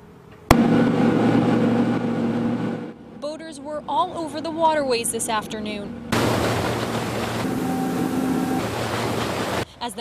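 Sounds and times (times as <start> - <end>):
boat motor humming: 3.9 - 9.6
water rushing along hull: 4.7 - 9.7.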